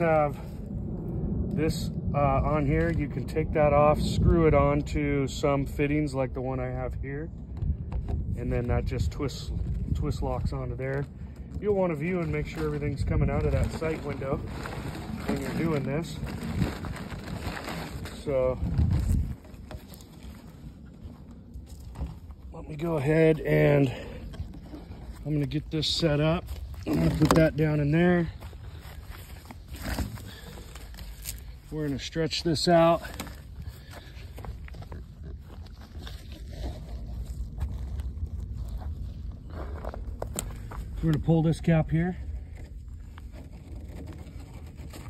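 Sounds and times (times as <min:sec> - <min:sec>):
wind rumbling on microphone: 0:00.0 - 0:45.0
plastic hose handling noise: 0:10.4 - 0:38.8.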